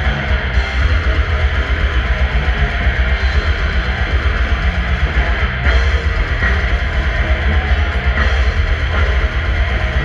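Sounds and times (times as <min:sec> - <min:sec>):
death metal band playing live: 0:00.0 - 0:10.0.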